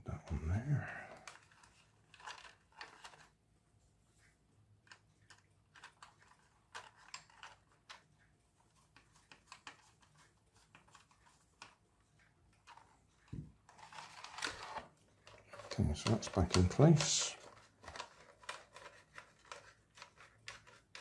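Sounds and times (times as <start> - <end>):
plastic toy parts clicking: 1.2 - 3.3, 4.8 - 8.1, 12.5 - 21.0.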